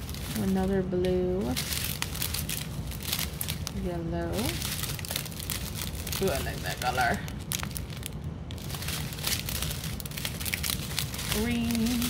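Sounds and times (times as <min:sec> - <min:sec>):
plastic bags crinkling: 0:00.0 - 0:12.0
resin beads rattling in bag: 0:00.0 - 0:12.0.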